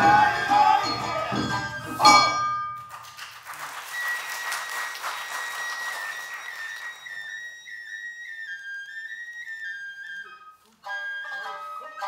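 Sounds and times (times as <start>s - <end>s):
bamboo flute melody: 0.0s - 2.7s, 3.9s - 12.0s
applause: 2.8s - 7.6s.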